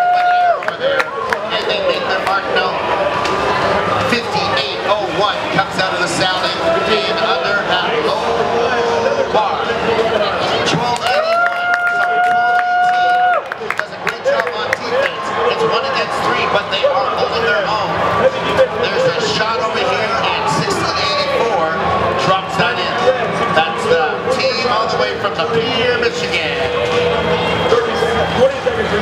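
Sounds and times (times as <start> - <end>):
crowd shouting and cheering: 0.0 - 29.0.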